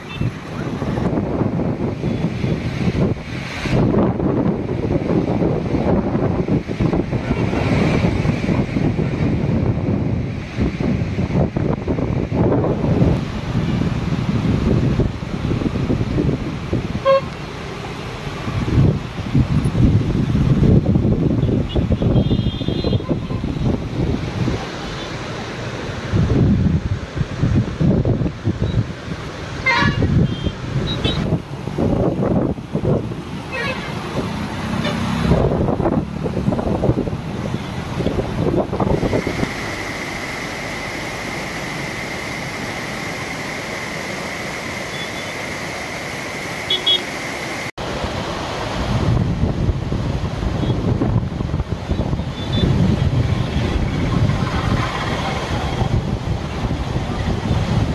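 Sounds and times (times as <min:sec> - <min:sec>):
wind buffeting microphone: 0:00.0 - 0:17.2, 0:18.3 - 0:42.9, 0:48.6 - 0:57.9
floodwater rushing over rocks: 0:00.0 - 0:22.0, 0:23.0 - 0:57.9
road traffic passing: 0:00.0 - 0:57.9
vehicle horn toots: 0:17.0 - 0:17.4, 0:21.4 - 0:23.4, 0:29.6 - 0:31.3, 0:33.5 - 0:34.0, 0:46.7 - 0:47.1.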